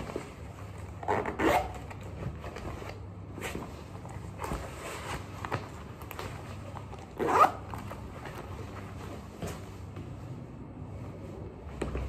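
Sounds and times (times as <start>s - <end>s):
boot zipper zipping: 1.0s - 1.8s, 7.2s - 7.7s.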